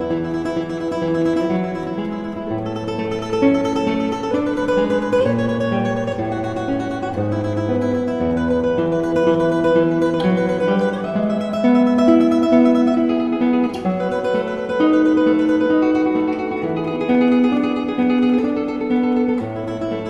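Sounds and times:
solo classical guitar melody: 0.0 - 20.0.

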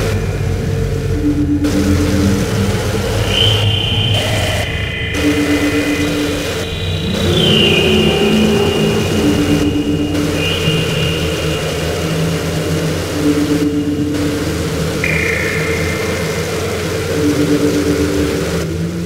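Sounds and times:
harsh noise music: 0.0 - 19.0
low droning hum: 0.0 - 19.0
recurring mid tone: 0.0 - 19.0.

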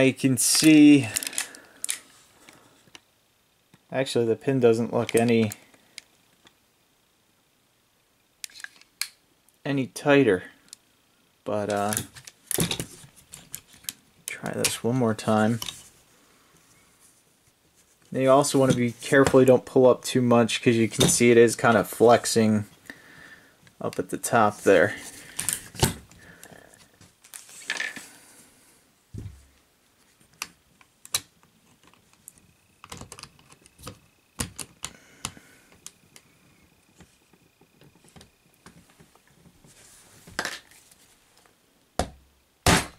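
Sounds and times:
plastic toy parts clicking and rattling: 0.5 - 2.0, 8.4 - 9.1, 30.4 - 34.9
dull thump: 29.2 - 29.4.

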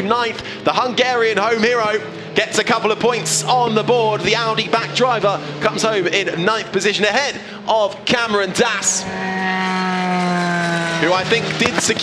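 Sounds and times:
race car engine passing: 0.6 - 12.0.

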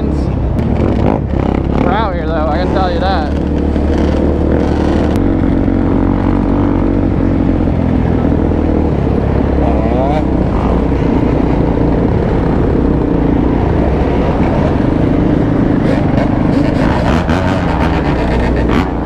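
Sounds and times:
dirt bikes and quads: 0.0 - 19.0
engine revving: 0.0 - 19.0
motorcycle engine running: 0.0 - 19.0.

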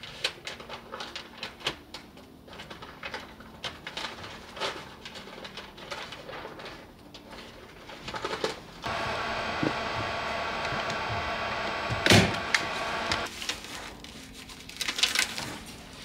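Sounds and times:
power tool motor whining: 8.8 - 13.3.

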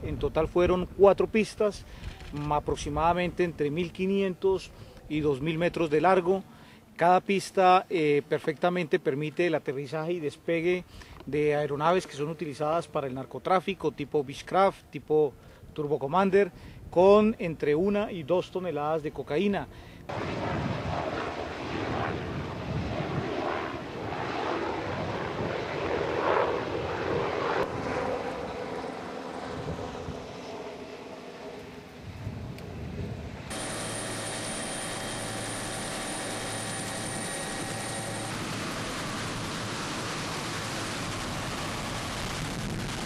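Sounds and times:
helicopter engine and rotor: 21.8 - 31.6, 33.5 - 43.0
thin high whine: 33.5 - 40.8.

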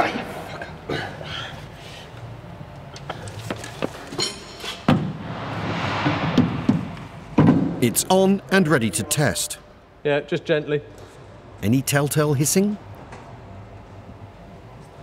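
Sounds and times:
rushing scrape: 5.1 - 7.4.

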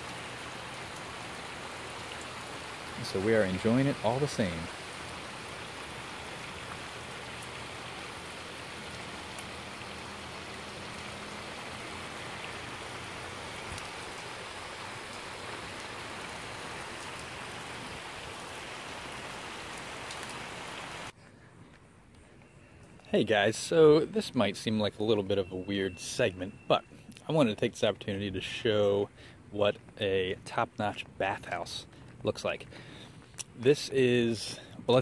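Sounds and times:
rain falling on pool and stone: 0.0 - 21.1, 22.8 - 35.0.

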